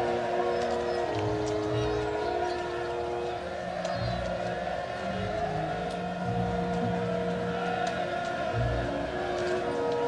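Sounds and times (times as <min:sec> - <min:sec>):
held musical chord: 0:00.0 - 0:10.0
large crowd shouting: 0:00.0 - 0:10.0.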